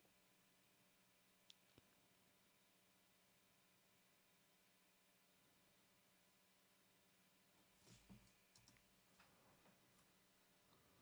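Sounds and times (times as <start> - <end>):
computer mouse clicks: 8.1 - 8.9.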